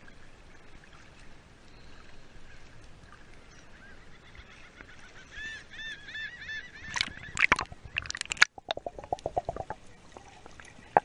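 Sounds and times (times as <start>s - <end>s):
water splashing: 6.8s - 11.0s.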